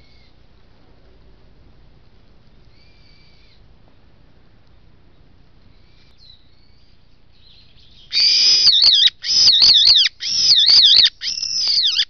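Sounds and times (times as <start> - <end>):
low background noise: 0.0 - 12.0
bird calls: 5.1 - 12.0.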